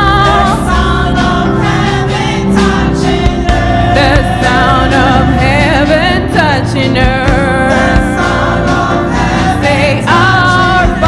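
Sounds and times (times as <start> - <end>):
instrumental backing: 0.0 - 11.0
women singing gospel song: 0.0 - 11.0.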